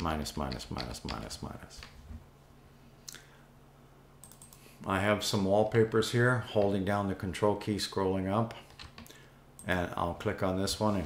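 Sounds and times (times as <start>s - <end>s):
computer mouse clicks: 4.2s - 4.6s.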